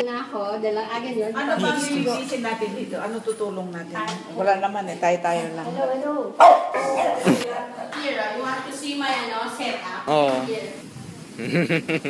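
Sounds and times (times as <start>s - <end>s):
dog barking: 6.4s - 7.4s.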